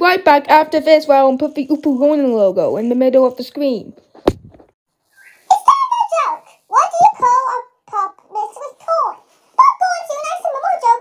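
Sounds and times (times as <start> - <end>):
sharp knock: 4.2 - 4.7
high-pitched whistle-like vocal sound: 5.1 - 5.6.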